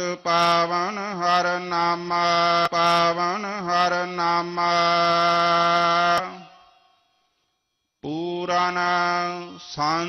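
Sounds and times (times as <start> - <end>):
person chanting a hymn: 0.0 - 6.6, 8.0 - 10.0.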